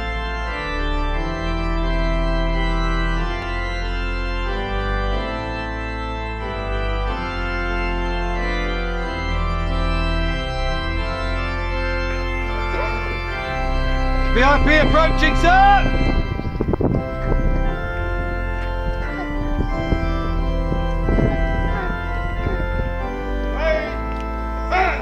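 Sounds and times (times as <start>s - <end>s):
organ music with held chords: 0.0s - 25.0s.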